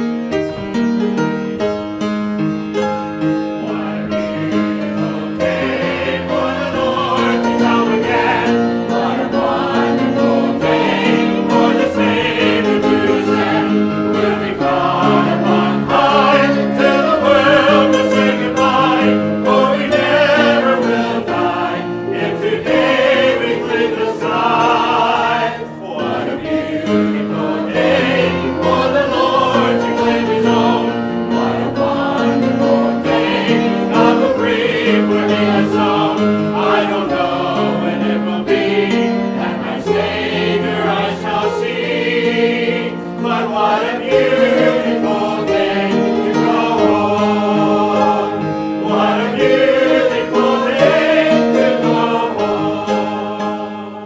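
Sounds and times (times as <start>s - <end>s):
choir singing: 2.8s - 54.0s.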